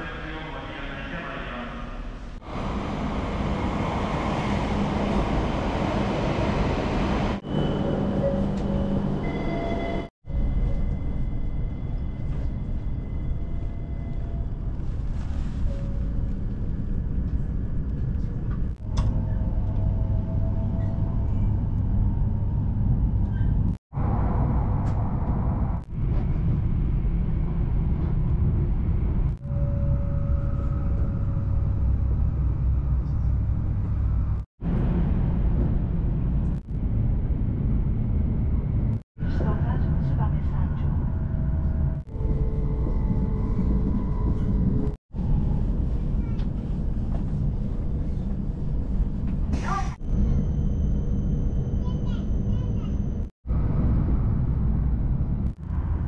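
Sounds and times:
train rumble inside carriage: 0.8 - 56.0.

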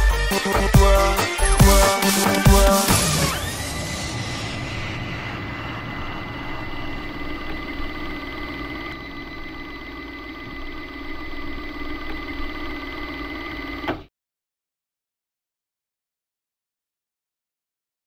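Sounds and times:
high held whine: 0.0 - 14.1
steady droning hum: 3.0 - 13.2.

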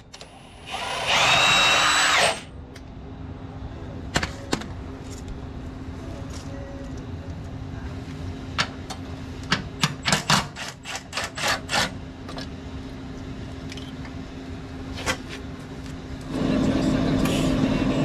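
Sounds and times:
loud steady noise: 14.2 - 18.0.

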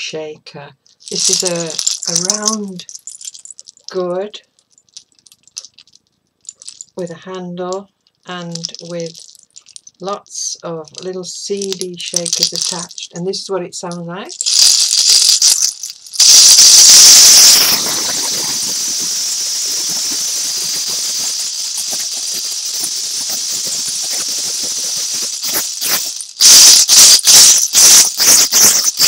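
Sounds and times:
gourd shaker rattling: 0.9 - 7.2, 8.2 - 13.2, 13.9 - 29.0.

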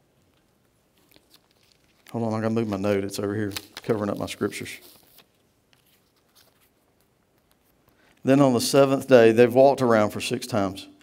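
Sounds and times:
paper rustling: 0.2 - 8.3.

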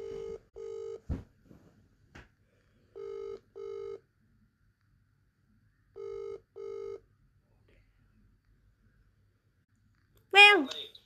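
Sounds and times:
phone ringback tone: 0.0 - 1.0, 3.0 - 4.0, 6.0 - 7.0.

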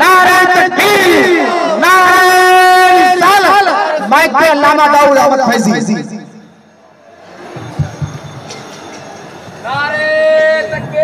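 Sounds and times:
man chanting over loudspeaker: 0.0 - 6.3
low crowd noise: 6.3 - 11.0.

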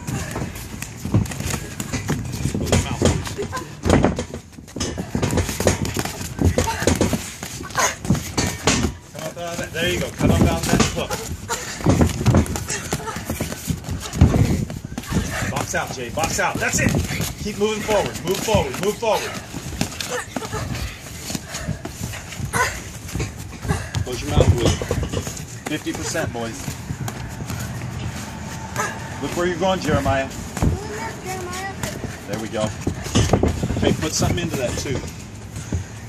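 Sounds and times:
boxing gloves thudding: 0.0 - 36.0.

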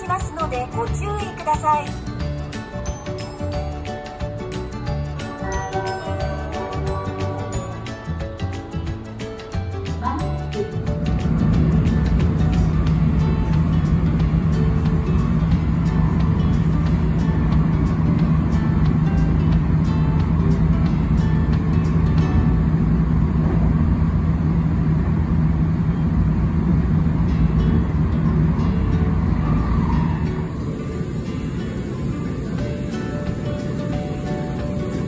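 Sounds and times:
background music: 0.0 - 23.6, 27.1 - 35.0
electric train rumble and hum: 0.0 - 35.0.

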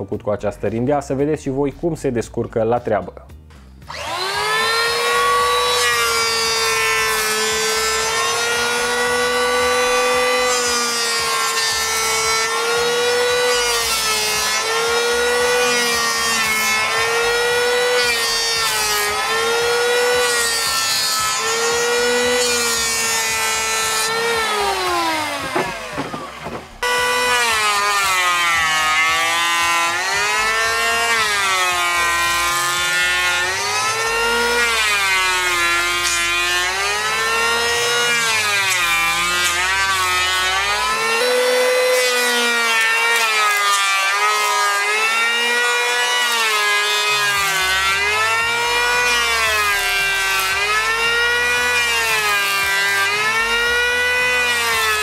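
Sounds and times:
electric planer planing wood: 3.8 - 55.0.

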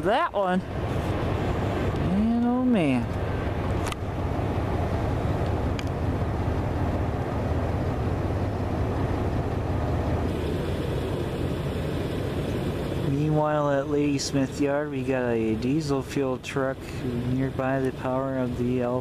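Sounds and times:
diesel freight train rumble: 0.0 - 19.0.

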